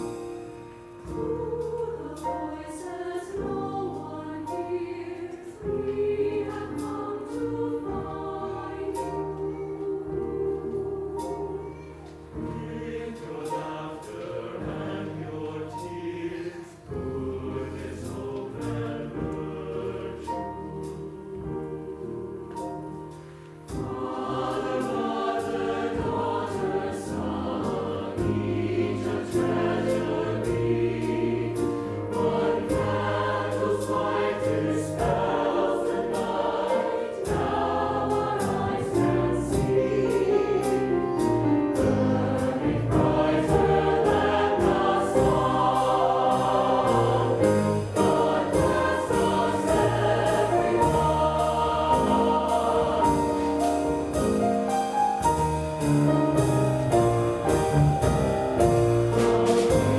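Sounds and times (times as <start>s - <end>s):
mixed choir singing: 0.0s - 59.9s
piano bass and drums: 0.0s - 59.9s.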